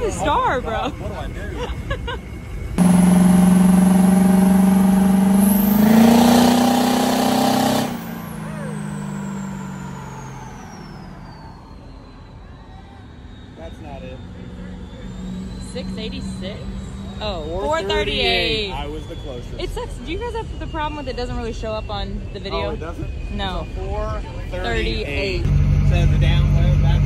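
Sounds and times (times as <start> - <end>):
truck engine at full throttle: 0.0 - 12.1, 13.3 - 27.0
turbo whistle: 2.8 - 24.4.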